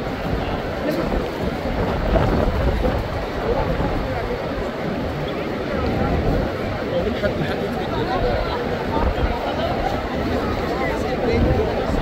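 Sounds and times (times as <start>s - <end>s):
crowd chatter: 0.0s - 12.0s
wind buffeting microphone: 0.0s - 12.0s.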